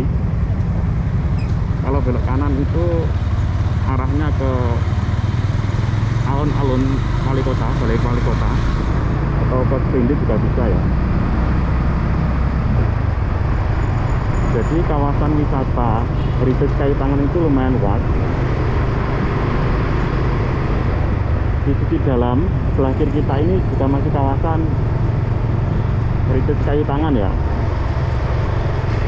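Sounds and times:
motorcycle engine running: 0.0s - 29.0s
other motorcycles in traffic: 0.0s - 29.0s
road rumble: 0.0s - 29.0s.

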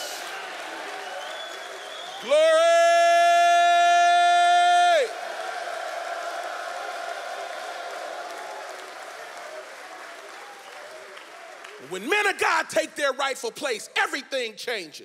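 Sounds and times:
men cheering and applauding: 0.0s - 12.9s
man shouting through a microphone: 2.2s - 5.2s, 11.8s - 15.0s.

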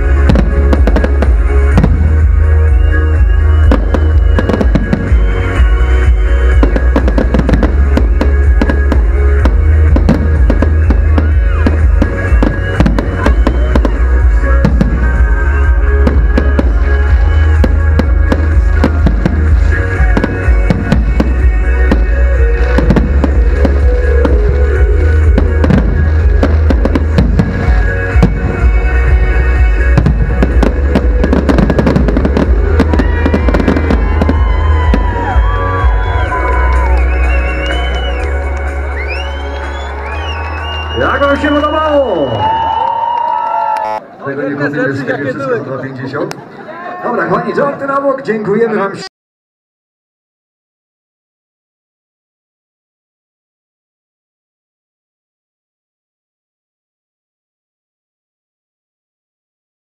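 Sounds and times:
loud music with heavy bass: 0.0s - 42.1s
fireworks bangs and crackles: 0.0s - 42.8s.

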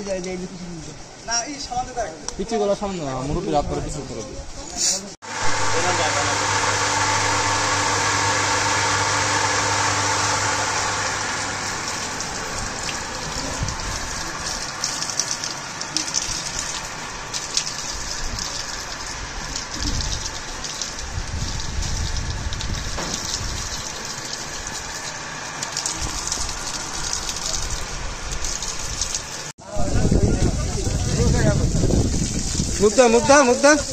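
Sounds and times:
steady low hum: 5.3s - 29.5s
water gushing from taps: 11.0s - 29.5s.

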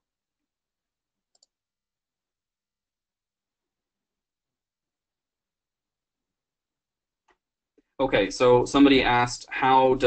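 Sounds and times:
computer mouse click: 1.3s - 1.6s.

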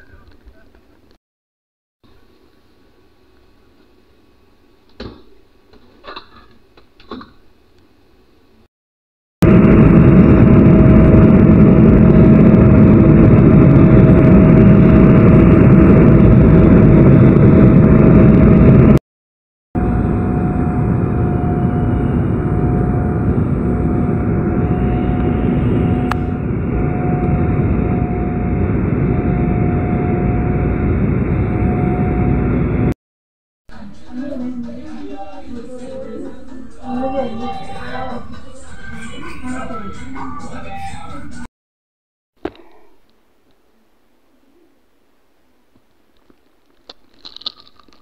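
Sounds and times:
jet airliner cabin noise: 9.4s - 19.0s, 19.8s - 32.9s
steady mid-pitched tone: 19.8s - 32.9s.

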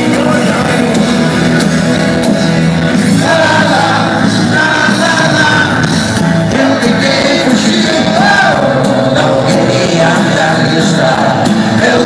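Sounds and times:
bass guitar: 0.0s - 12.0s
drums: 0.0s - 12.0s
electric guitar: 0.0s - 12.0s
person singing: 0.0s - 12.0s.

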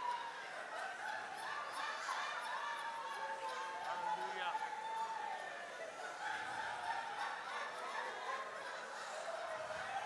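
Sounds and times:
people laughing: 0.0s - 10.0s.

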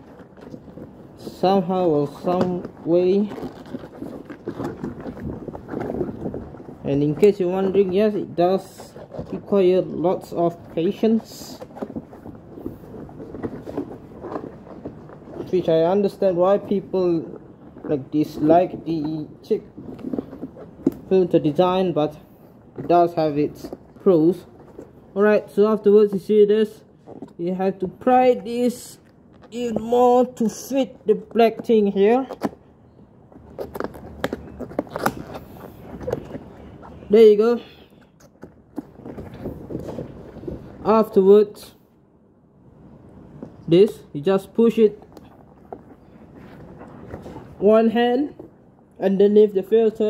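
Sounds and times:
rubber gas mask rubbing: 0.0s - 41.6s, 42.8s - 49.0s.

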